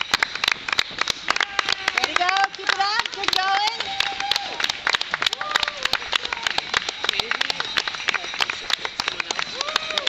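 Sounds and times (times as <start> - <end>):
spectators clapping: 0.0 - 10.0
wordless cheering voices: 9.4 - 10.0.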